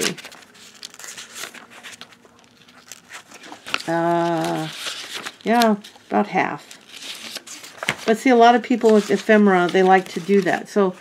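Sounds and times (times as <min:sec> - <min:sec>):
paper pages flipping: 0:00.0 - 0:11.0.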